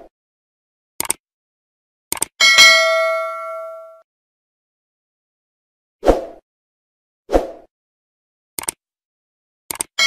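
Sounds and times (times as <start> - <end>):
mouse clicks: 1.0 - 1.2, 2.1 - 2.3, 8.6 - 8.8, 9.7 - 9.9
notification bell ding: 2.4 - 4.0.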